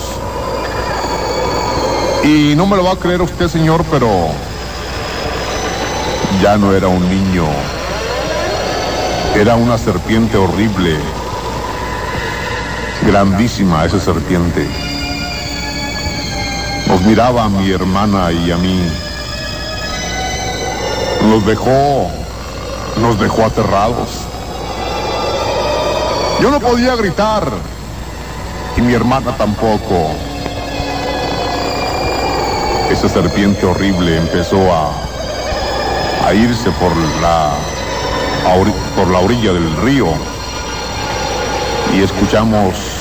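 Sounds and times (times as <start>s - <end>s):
low rumbling drone: 0.0s - 43.0s
thin high tones: 0.0s - 43.0s.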